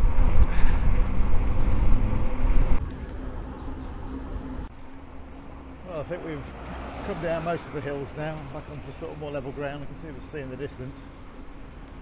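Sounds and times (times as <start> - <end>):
bicycle road noise: 0.0 - 12.0.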